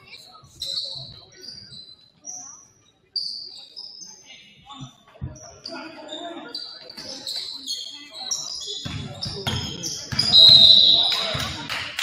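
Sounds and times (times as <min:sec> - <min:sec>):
sneaker squeaks: 0:00.0 - 0:11.5
players' voices: 0:00.0 - 0:12.0.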